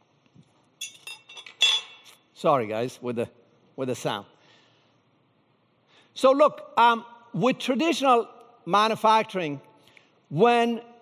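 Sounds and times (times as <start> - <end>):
sharp clinks and knocks: 0.8 - 2.2.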